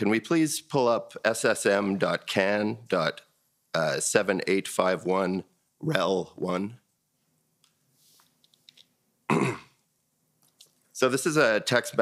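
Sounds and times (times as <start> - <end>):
person clearing throat: 9.3 - 9.8.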